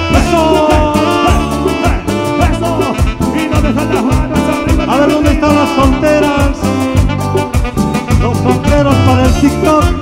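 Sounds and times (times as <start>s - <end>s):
bass: 0.0s - 10.0s
electronic keyboard melody: 0.0s - 10.0s
steady percussion beat: 0.0s - 10.0s.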